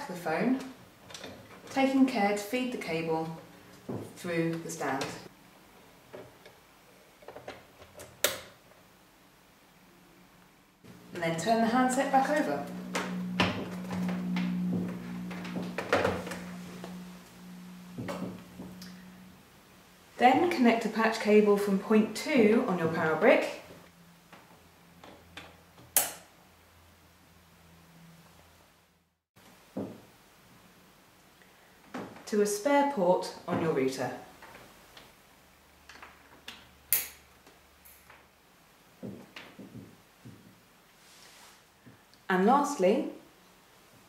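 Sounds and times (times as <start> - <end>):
steady low hum: 9.5 - 25.7.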